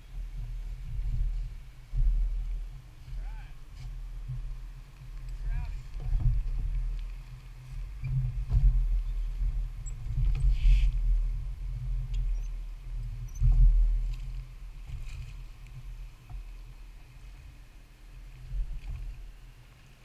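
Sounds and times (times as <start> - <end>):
low rumble of rowing: 0.0 - 20.0.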